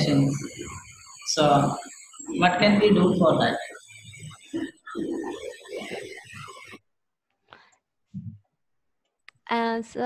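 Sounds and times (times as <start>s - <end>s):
low voice murmuring: 0.0s - 6.8s.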